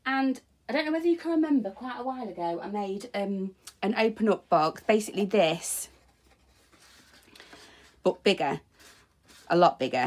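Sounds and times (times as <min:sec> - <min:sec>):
cardstock rustling and sliding: 0:05.5 - 0:10.0.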